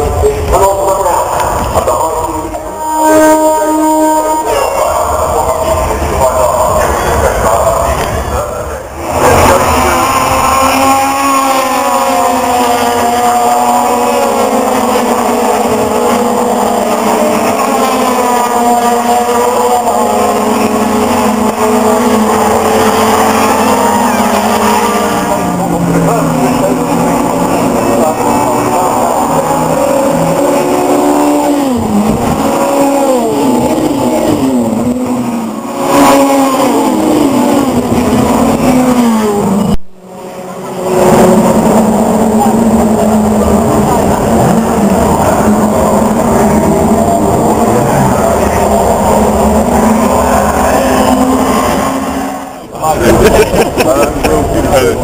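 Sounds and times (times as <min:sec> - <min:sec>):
racing cars revving past: 0:00.0 - 0:55.0.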